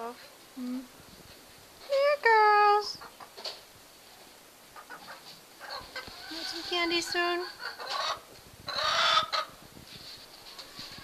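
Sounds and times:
hens clucking: 4.8s - 9.6s.

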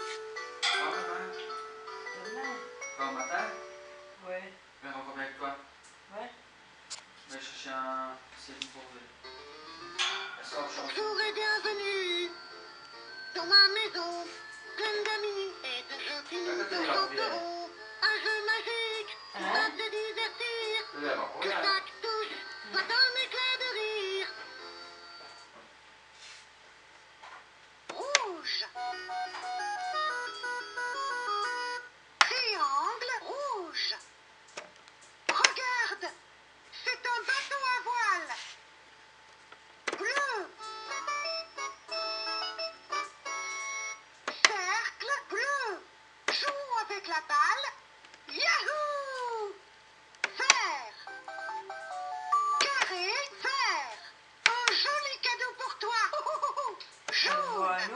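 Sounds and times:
toy speaker playing sung jingle: 11.6s - 21.0s, 28.8s - 31.9s, 40.2s - 44.0s, 51.0s - 53.1s.

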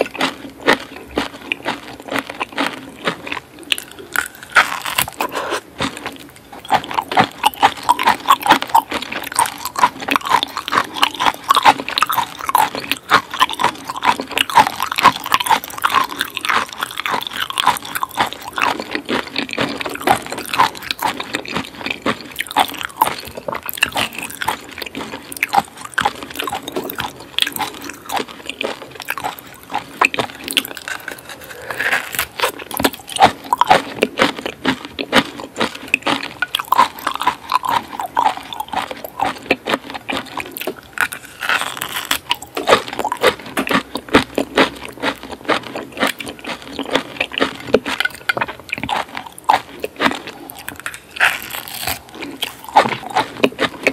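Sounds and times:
biting and chewing: 0.0s - 53.9s.

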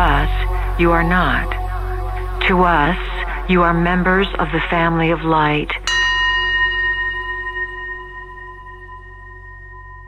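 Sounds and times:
low synth drone: 0.0s - 10.0s
struck bell tone: 5.8s - 10.0s.

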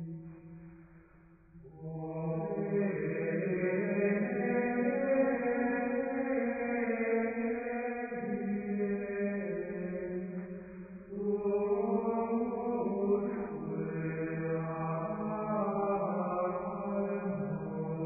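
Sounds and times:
slow sung chant: 0.0s - 18.0s.

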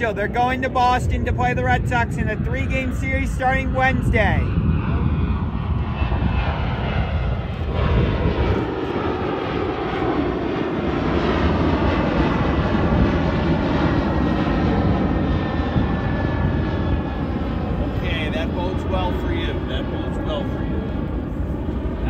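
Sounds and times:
jet airliner engines roaring: 0.0s - 22.0s.

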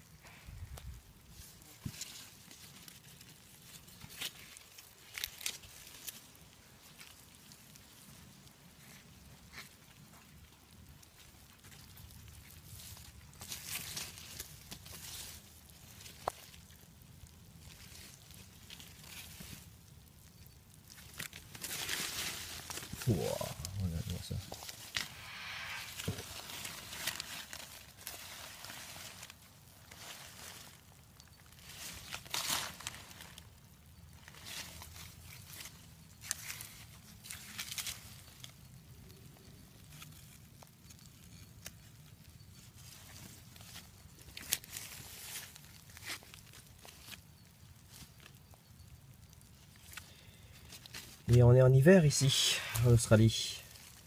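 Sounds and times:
louder scrapes: 25.0s - 26.3s.

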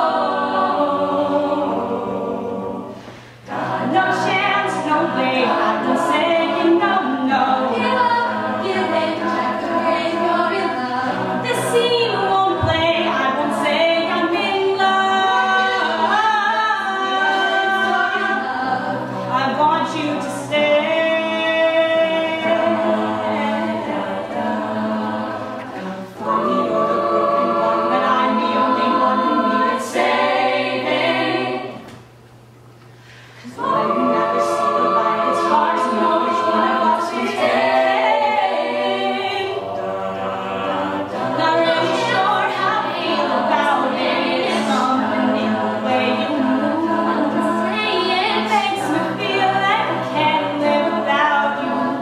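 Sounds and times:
a cappella group singing chords: 0.0s - 32.2s, 32.9s - 52.0s
backing voices holding chords: 32.9s - 52.0s.

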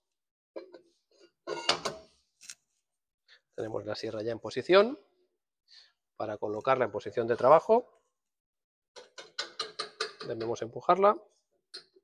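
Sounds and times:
metal clunks and scraping: 0.6s - 2.1s.

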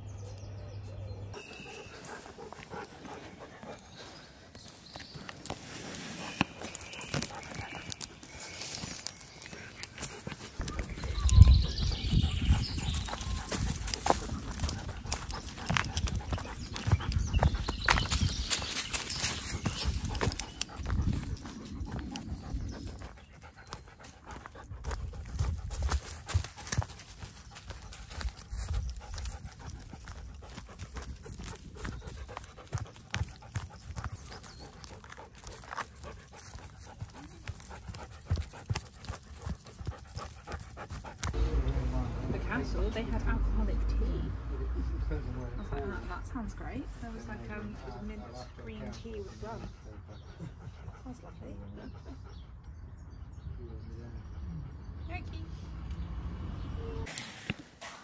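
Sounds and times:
dog panting: 1.3s - 5.2s, 6.2s - 8.4s, 9.4s - 41.4s, 45.6s - 53.4s
footsteps crunching dry leaves: 1.8s - 11.0s, 12.8s - 22.1s, 24.8s - 39.7s.

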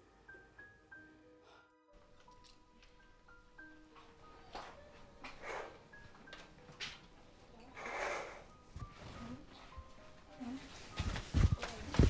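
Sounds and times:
soft film music with held notes: 0.0s - 12.0s
rustling swishes: 10.6s - 12.0s.

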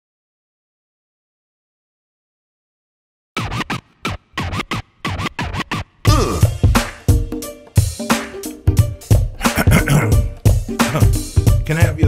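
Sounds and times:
turntable scratching: 3.4s - 6.1s
hip hop beat with kick and bass: 3.4s - 12.0s.

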